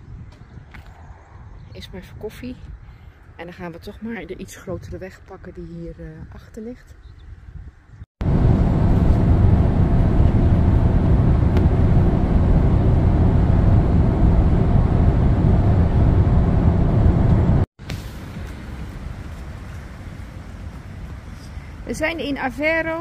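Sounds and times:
outdoor ambience: 0:00.0 - 0:23.0
vehicle driving on motorway: 0:08.2 - 0:21.9.

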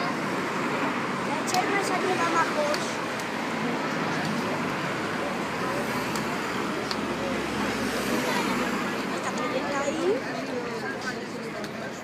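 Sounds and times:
city road traffic: 0:00.0 - 0:12.0.

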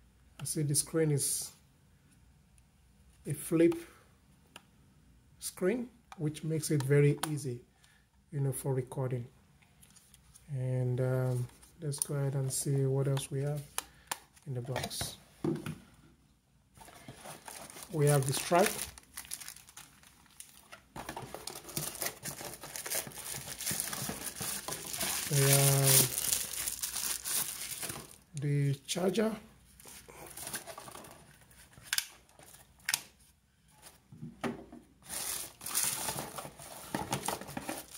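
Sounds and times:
plastic packaging crinkling: 0:16.8 - 0:28.3, 0:35.0 - 0:37.9
crisp crackles: 0:17.2 - 0:20.7, 0:21.3 - 0:28.2, 0:35.1 - 0:36.8.

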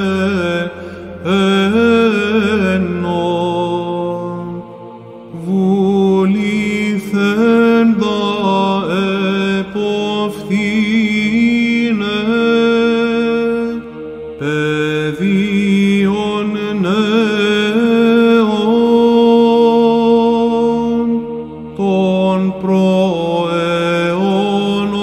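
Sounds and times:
man chanting a slow melody: 0:00.0 - 0:04.7, 0:05.3 - 0:25.0
held vocal drone: 0:00.0 - 0:25.0.

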